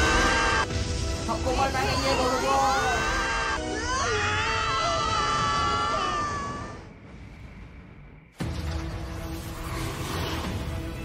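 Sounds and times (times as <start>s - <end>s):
high-pitched cartoon scream: 0.0s - 0.7s, 1.7s - 6.9s.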